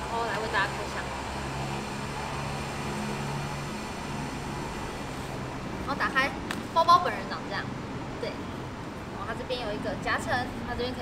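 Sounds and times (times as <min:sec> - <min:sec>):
city background hum: 0:00.0 - 0:11.0.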